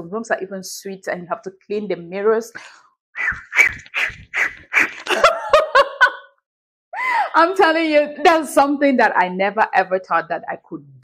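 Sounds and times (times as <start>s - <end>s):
woman laughing hard: 4.8s - 6.3s.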